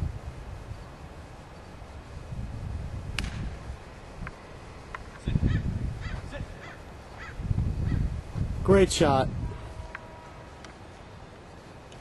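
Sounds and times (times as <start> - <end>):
wind rumble on microphone: 0.0 - 10.5
golf club striking ball: 3.2 - 3.6
short repeated bird calls: 5.4 - 8.1.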